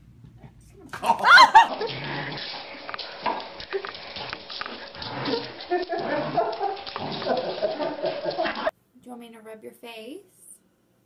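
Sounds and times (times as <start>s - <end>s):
dog growling and yipping: 0.9s - 8.7s
sliding high cry: 1.0s - 1.7s.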